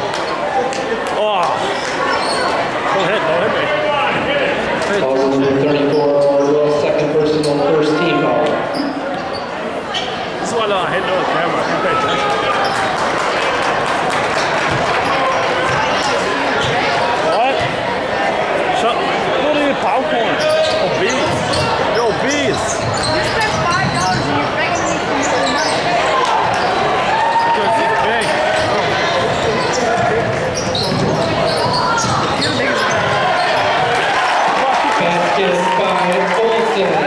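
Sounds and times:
crowd chatter echoing: 0.0s - 37.0s.

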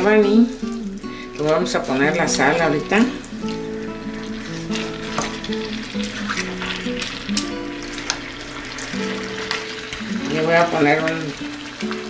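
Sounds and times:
background music with held notes: 0.0s - 12.0s
meat sizzling in a pan: 1.0s - 12.0s.

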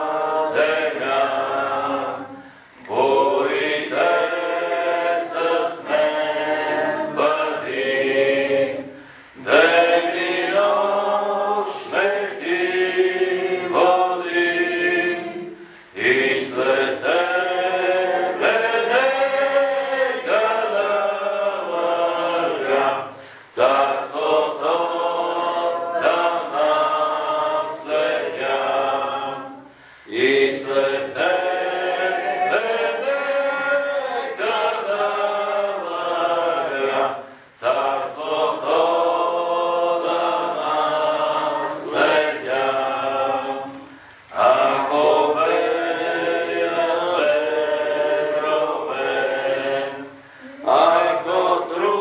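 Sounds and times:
voices singing a slow hymn: 0.0s - 52.0s.

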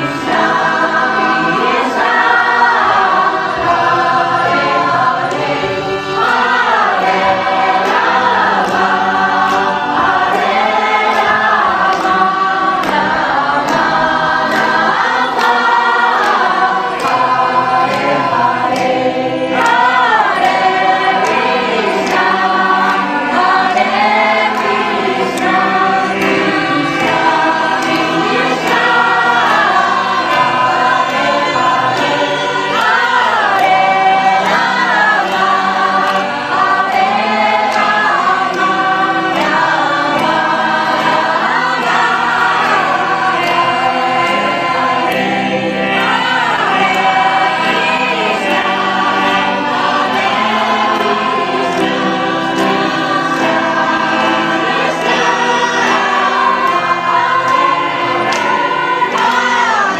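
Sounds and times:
group singing devotional song: 0.0s - 59.9s
hands clapping: 0.0s - 59.9s.

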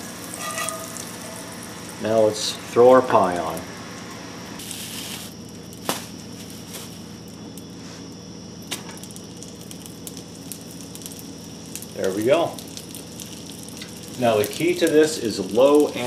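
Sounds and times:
butter sizzling in a pan: 0.0s - 7.6s, 8.5s - 16.0s.

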